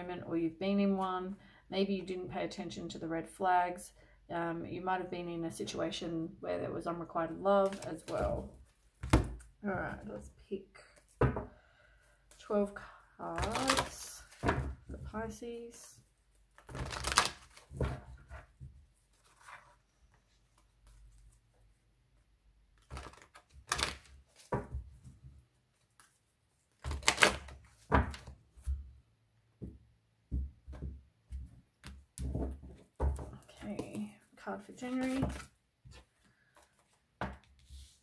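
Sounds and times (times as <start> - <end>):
cards being shuffled: 16.5 - 18.0, 22.8 - 24.6, 25.8 - 28.7.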